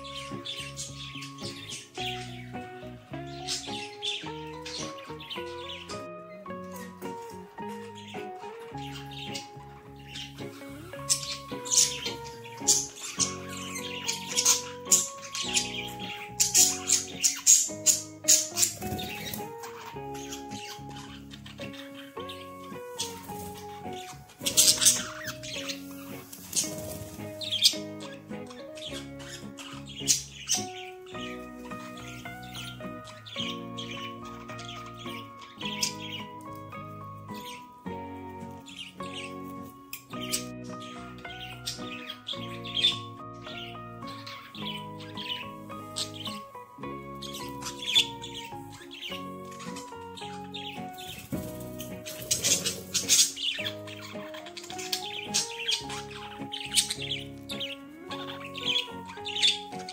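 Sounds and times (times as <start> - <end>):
budgerigars chirping and squawking: 0.0 - 59.9
calm instrumental music: 0.0 - 59.9.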